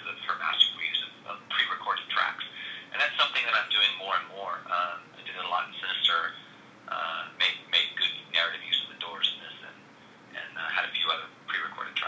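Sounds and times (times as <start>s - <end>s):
man talking over phone line: 0.0s - 9.8s, 10.4s - 12.0s.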